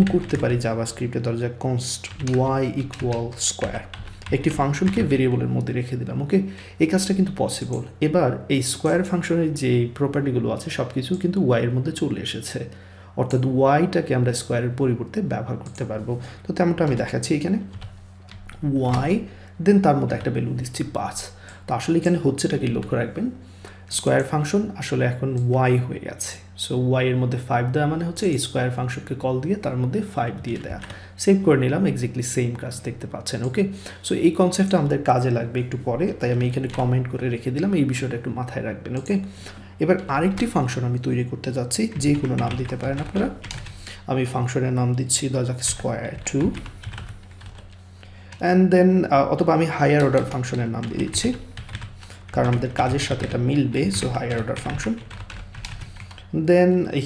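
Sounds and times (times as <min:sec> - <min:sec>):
computer keyboard keystrokes: 0:00.0 - 0:00.6, 0:02.0 - 0:05.2, 0:41.9 - 0:43.8, 0:45.7 - 0:47.8, 0:50.0 - 0:56.3
man speaking: 0:00.0 - 0:17.8, 0:18.5 - 0:43.5, 0:44.1 - 0:46.7, 0:48.4 - 0:51.5, 0:52.3 - 0:55.1, 0:56.3 - 0:57.0.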